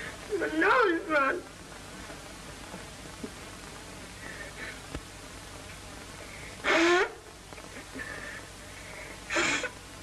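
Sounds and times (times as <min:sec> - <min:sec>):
boy blowing his nose: 0:06.6 - 0:07.1, 0:09.3 - 0:09.8.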